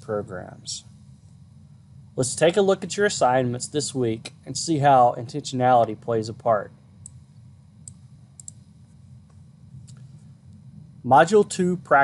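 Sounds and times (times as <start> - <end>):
low steady room hum: 0.0 - 12.0
faint clicks: 7.8 - 8.6.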